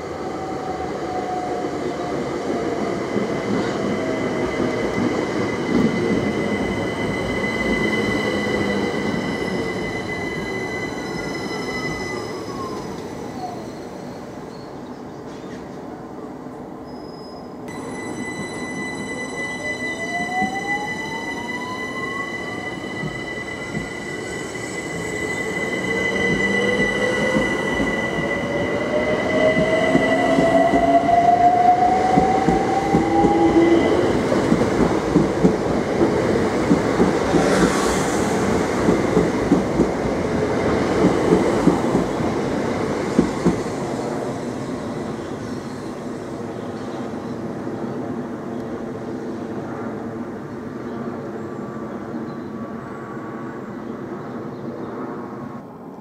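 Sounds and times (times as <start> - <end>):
steady high tone: 3.5 - 13.8, 17.7 - 34.5.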